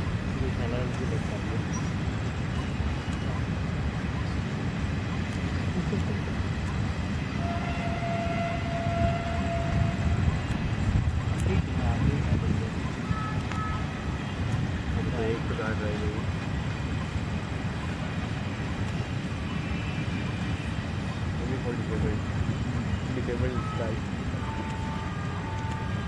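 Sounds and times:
train rumbling past: 6.3 - 26.0
held horn tone: 7.3 - 10.6, 22.8 - 26.0.

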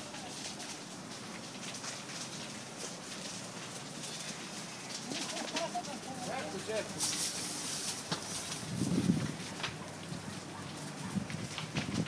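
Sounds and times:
faint crackles: 0.0 - 12.0
outdoor hiss: 0.0 - 12.0.

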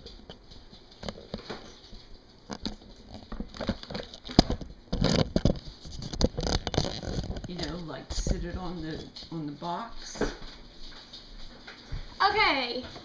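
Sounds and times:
camera handling knocks and rustles: 2.5 - 7.6.

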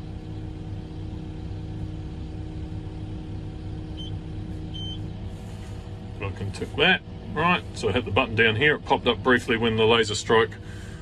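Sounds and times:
diesel engine running: 0.0 - 11.0.

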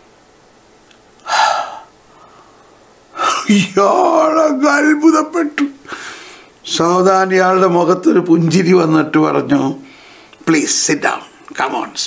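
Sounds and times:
man gasping: 1.2 - 3.5, 5.8 - 6.5.

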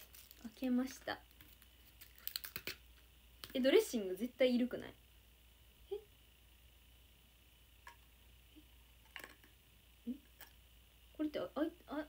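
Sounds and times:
plastic packaging clicks and crackles: 0.0 - 2.8.

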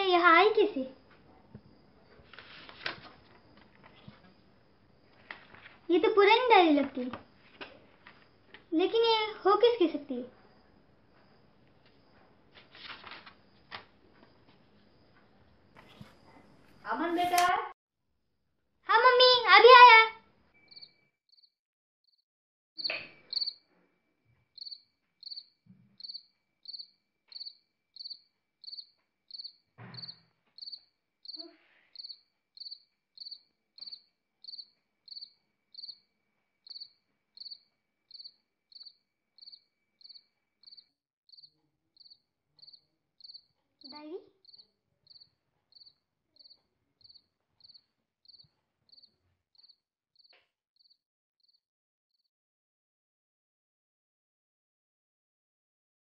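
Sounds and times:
cricket chirping: 0.0 - 17.2, 20.6 - 21.5, 22.8 - 51.6.

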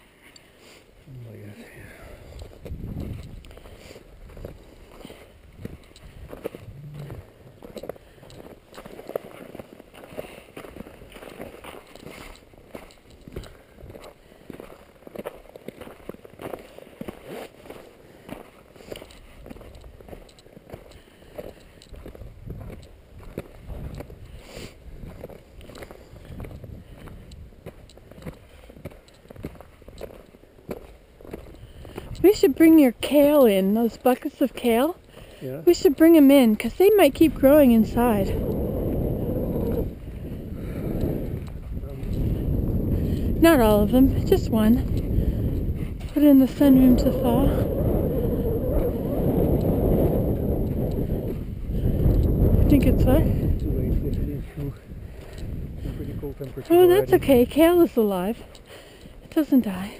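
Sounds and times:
footsteps crunching on snow: 0.6 - 32.8.

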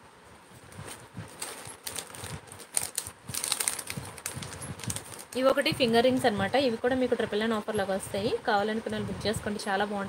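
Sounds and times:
objects being moved by hand: 0.6 - 5.4.

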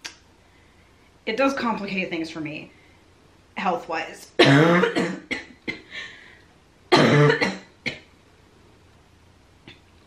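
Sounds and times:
woman coughing: 4.4 - 5.9, 6.9 - 8.1.

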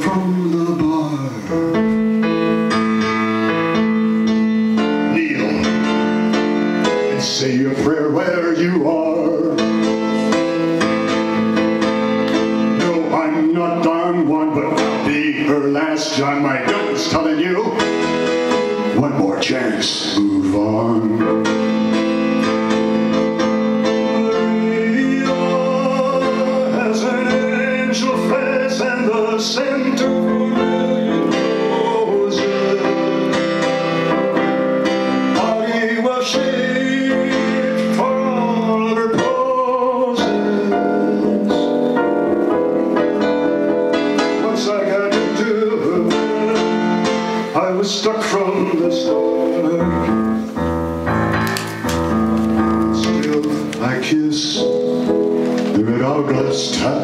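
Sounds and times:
person singing: 0.0 - 50.6, 51.4 - 57.0
electronic keyboard piano chords: 0.0 - 57.0.

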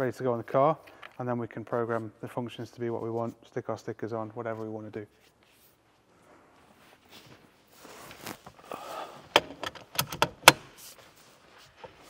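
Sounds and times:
steering wheel clicks and knocks: 9.3 - 10.7.

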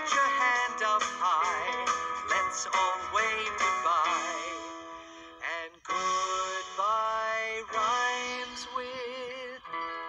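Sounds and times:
bright backing music: 0.0 - 10.0
man singing with vibrato: 0.0 - 10.0.

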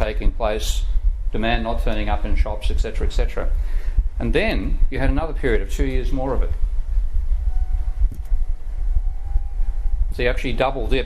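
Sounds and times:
faint steady hum: 0.0 - 11.0
low room rumble: 0.0 - 11.0.

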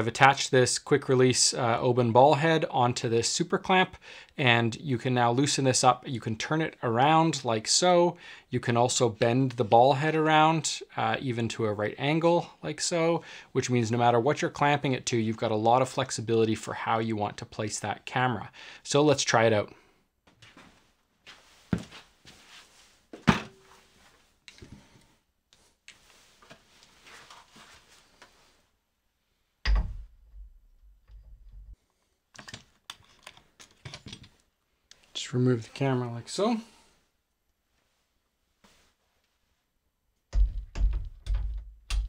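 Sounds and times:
knocks and rustles of handling: 20.2 - 25.0, 25.6 - 28.6, 29.6 - 34.5
heavy thump: 29.6 - 30.6, 40.4 - 42.0.

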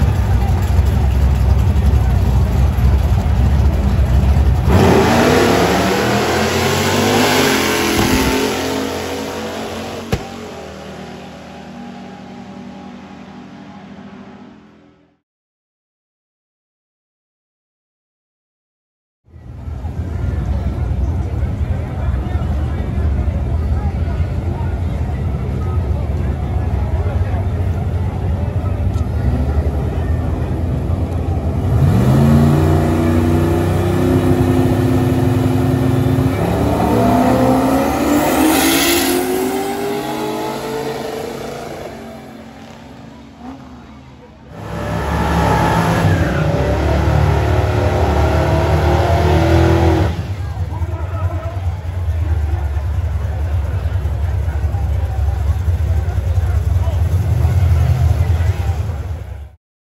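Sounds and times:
crowd voices: 0.0 - 15.2, 19.3 - 59.6
racing car engines at full throttle: 0.0 - 15.2, 19.3 - 59.6.

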